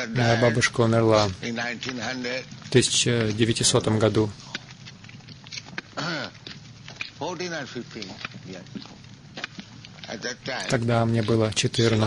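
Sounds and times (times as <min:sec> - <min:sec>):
faint men's voices talking: 0:00.0 - 0:04.8, 0:05.8 - 0:12.0.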